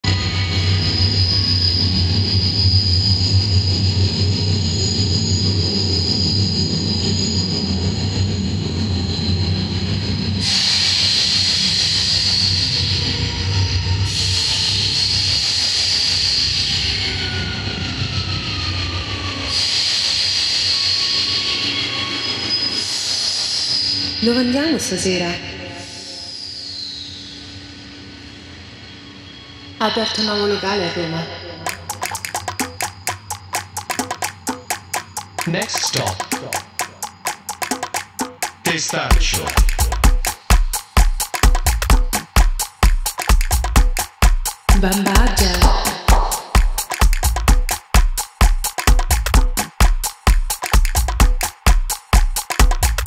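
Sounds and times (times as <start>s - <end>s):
subway train rumble: 0.0s - 26.2s
high wheel squeal: 0.1s - 24.2s, 25.8s - 29.8s
hiss of noise: 10.4s - 13.0s.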